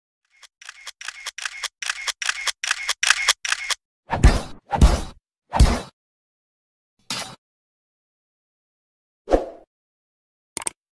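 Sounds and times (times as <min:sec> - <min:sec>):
camera shutter double clicks: 0:00.4 - 0:03.8.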